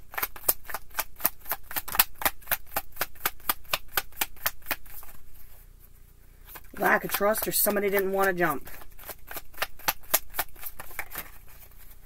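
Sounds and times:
cards being shuffled: 0:00.0 - 0:05.6, 0:06.5 - 0:12.0.

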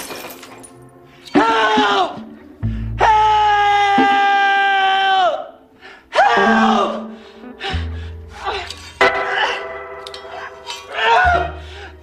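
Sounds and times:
glass breaking: 0:00.0 - 0:00.8, 0:09.9 - 0:11.1
man screaming: 0:01.4 - 0:02.2, 0:03.0 - 0:07.2, 0:10.9 - 0:11.6
man crying out: 0:03.0 - 0:05.5, 0:06.1 - 0:09.6, 0:10.9 - 0:11.6.

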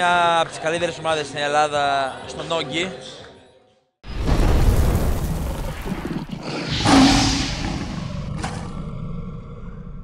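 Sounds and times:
loud hit: 0:06.7 - 0:08.3.

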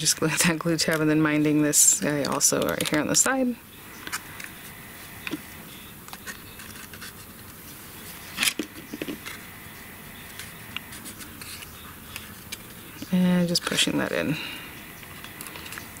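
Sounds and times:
cardstock rustling and scraping: 0:00.4 - 0:13.9, 0:15.0 - 0:16.0.

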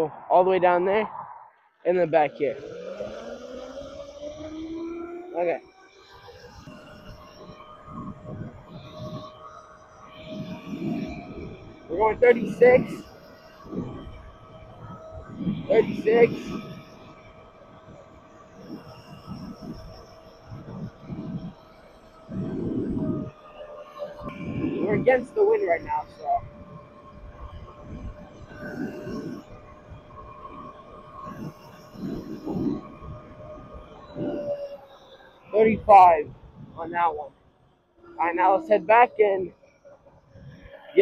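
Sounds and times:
electric motor whine: 0:02.2 - 0:41.0
wind rushing over microphone: 0:06.1 - 0:37.4.

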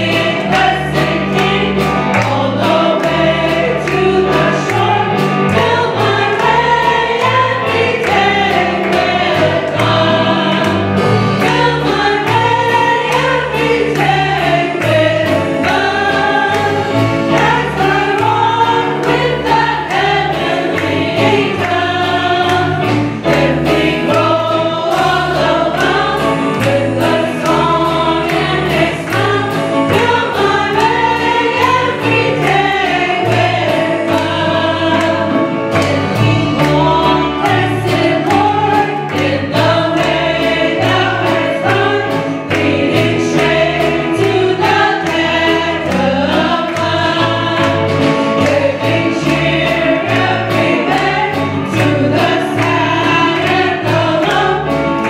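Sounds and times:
steady drum beat: 0:00.0 - 0:55.0
women singing gospel: 0:00.0 - 0:55.0.

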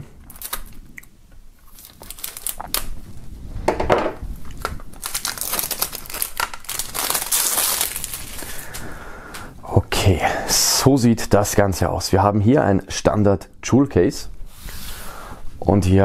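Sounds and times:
plastic film crinkling: 0:00.2 - 0:00.9, 0:01.6 - 0:03.2, 0:04.3 - 0:08.9.

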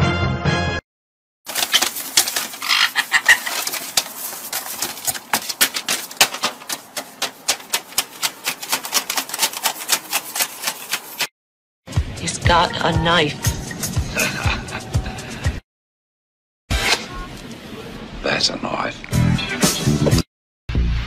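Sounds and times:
bird feet tapping on paper: 0:01.5 - 0:11.3
parrot high call: 0:02.6 - 0:03.5.

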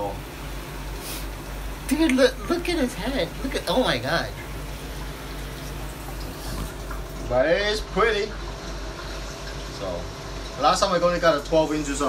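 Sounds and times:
constant low hum: 0:00.0 - 0:12.0
running water rushing: 0:00.0 - 0:12.0.

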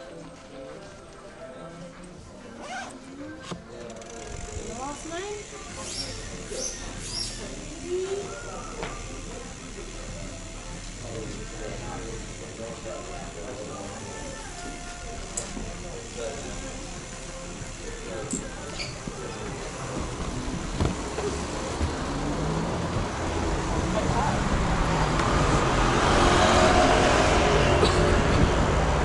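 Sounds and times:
background music: 0:00.0 - 0:29.0
indistinct voices: 0:00.0 - 0:29.0.

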